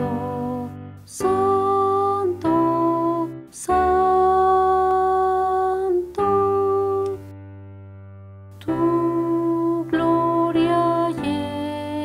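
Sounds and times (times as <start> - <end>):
keyboard hymn chords: 0.0 - 12.0.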